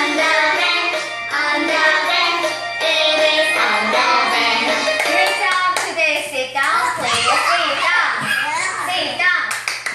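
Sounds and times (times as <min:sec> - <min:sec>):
children's song: 0:00.0 - 0:08.7
hand claps: 0:05.0 - 0:06.0, 0:09.5 - 0:09.9
young children's excited voices: 0:06.8 - 0:09.3.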